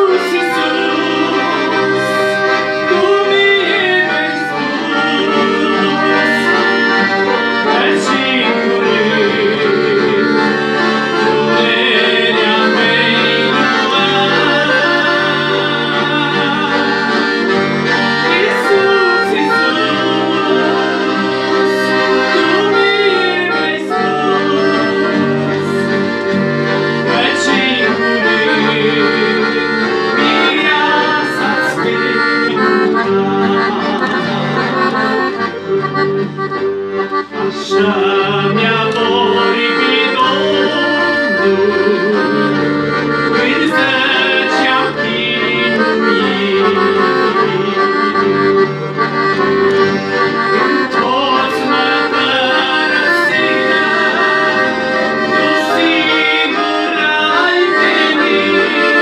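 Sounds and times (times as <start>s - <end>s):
man singing: 0.0s - 26.1s, 26.7s - 35.4s, 37.2s - 48.5s, 50.5s - 59.0s
piano accordion playing a tune: 0.0s - 59.0s.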